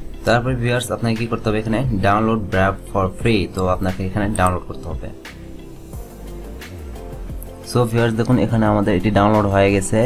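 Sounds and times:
man talking: 0:00.2 - 0:05.3, 0:07.6 - 0:10.0.

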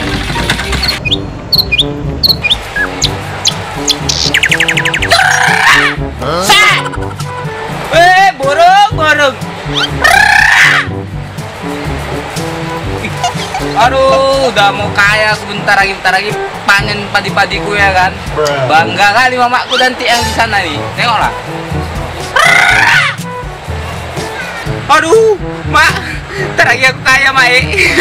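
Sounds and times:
background music: 0:00.0 - 0:28.0
high-pitched scream: 0:05.1 - 0:06.0, 0:09.8 - 0:10.9, 0:22.4 - 0:23.2
man shouting: 0:05.2 - 0:07.0.

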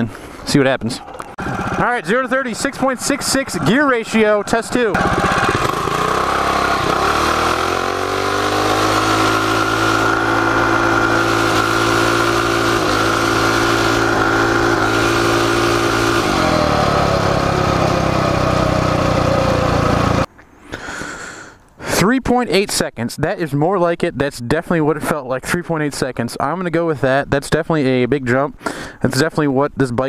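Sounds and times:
minibike engine at full throttle: 0:01.4 - 0:20.3.

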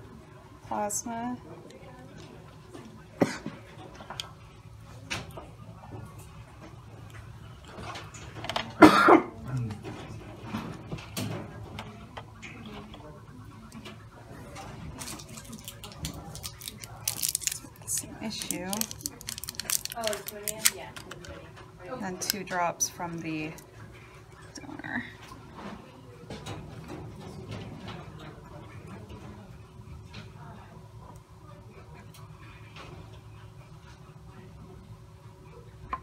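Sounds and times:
plastic tubes clicking and tapping: 0:15.8 - 0:21.3.

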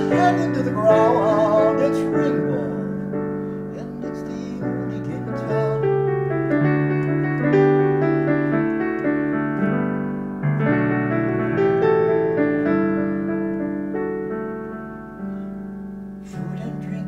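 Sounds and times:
digital piano chords and melody: 0:00.0 - 0:17.0.

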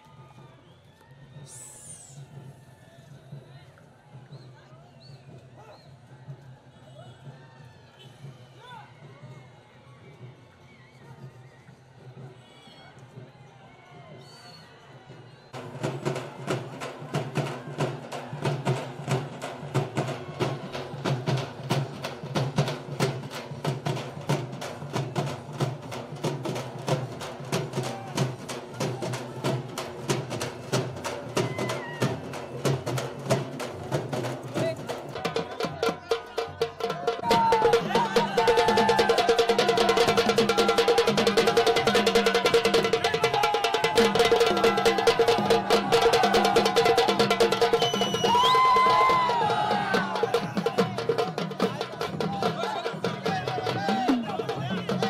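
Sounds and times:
drums beaten fast: 0:15.5 - 0:55.0.

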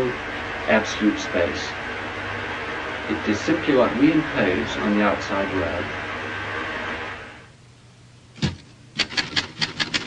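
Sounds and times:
old film soundtrack hiss: 0:00.0 - 0:10.0.

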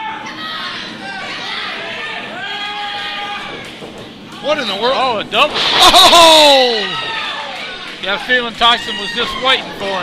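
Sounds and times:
people shouting and calling: 0:05.8 - 0:07.7.

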